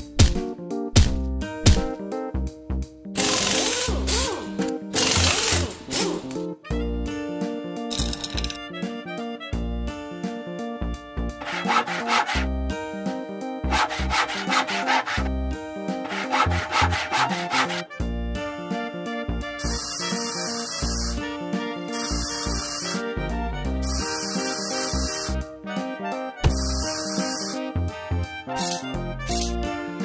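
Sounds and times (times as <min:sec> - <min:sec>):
background music: 0:00.0 - 0:30.0
sawing strokes: 0:03.2 - 0:06.4, 0:11.4 - 0:12.5, 0:13.6 - 0:15.3, 0:15.9 - 0:18.0, 0:19.6 - 0:21.2, 0:21.9 - 0:23.0, 0:23.8 - 0:25.4, 0:26.5 - 0:27.6
high hissing bursts: 0:19.6 - 0:21.2, 0:21.9 - 0:23.0, 0:23.8 - 0:25.4, 0:26.5 - 0:27.6.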